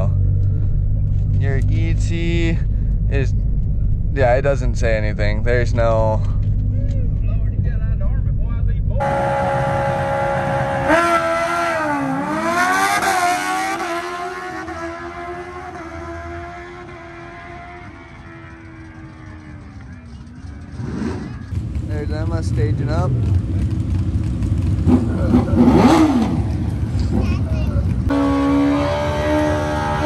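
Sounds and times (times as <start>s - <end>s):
car engine idling: 0.0s - 11.1s, 15.3s - 28.3s
drag car engine revving and accelerating: 9.0s - 23.4s, 24.3s - 27.2s, 28.1s - 30.0s.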